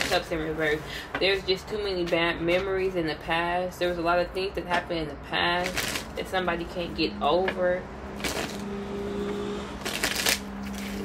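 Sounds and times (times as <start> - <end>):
cards being shuffled: 9.8 - 11.0.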